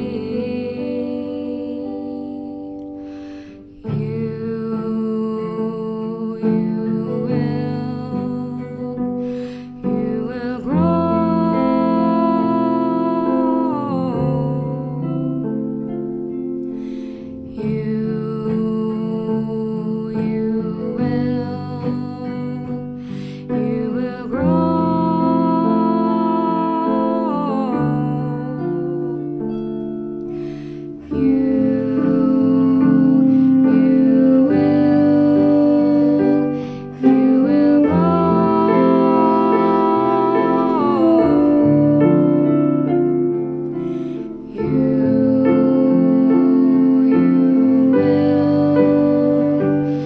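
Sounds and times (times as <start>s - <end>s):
keyboard: 0.0s - 50.0s
saxophones: 30.3s - 50.0s.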